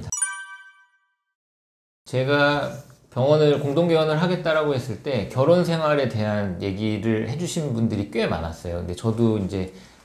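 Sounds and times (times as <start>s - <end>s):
bell-like ding: 0.0s - 1.3s.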